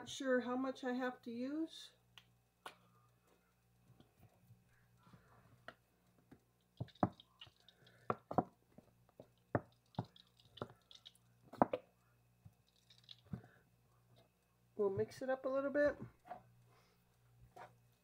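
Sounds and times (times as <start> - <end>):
ketchup bottle squelching spurts: 6.8 - 8.0, 9.6 - 11.2, 12.7 - 13.4.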